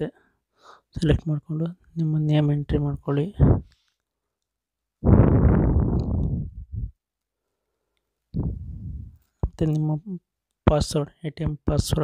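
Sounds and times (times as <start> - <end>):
person speaking: 0.0 - 0.2, 0.9 - 3.8, 8.4 - 12.0.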